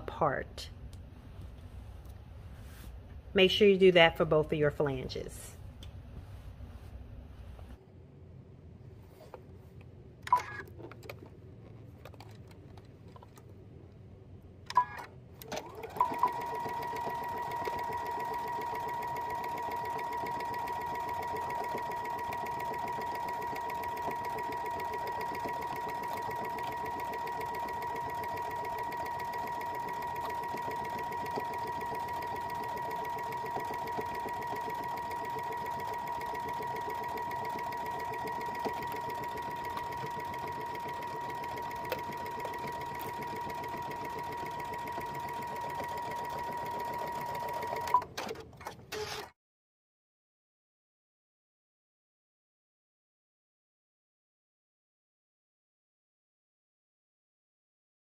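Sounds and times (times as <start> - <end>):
electric sewing machine running: 15.6 - 48.0.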